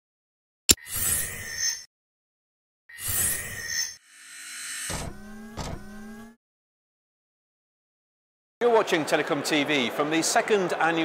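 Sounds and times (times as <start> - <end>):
whirring electronic tone: 0.7 - 1.9, 2.9 - 6.4.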